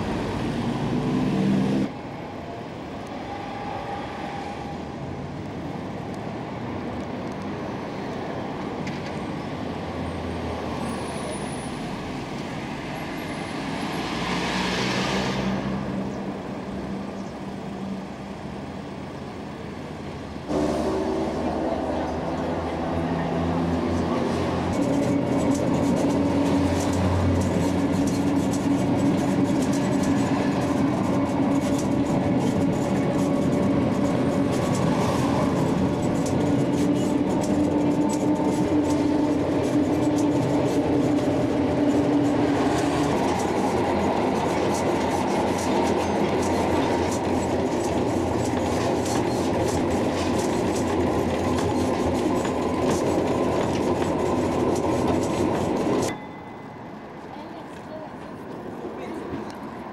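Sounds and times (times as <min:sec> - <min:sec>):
tram rolling and rattling: 0:00.0 - 0:59.9.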